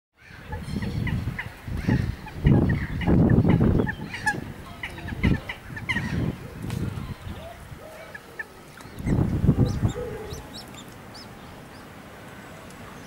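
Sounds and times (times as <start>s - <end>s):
chicks peeping: 0.5s - 6.2s, 8.4s - 11.9s
rough low-pitched bursts: 8.9s - 11.9s.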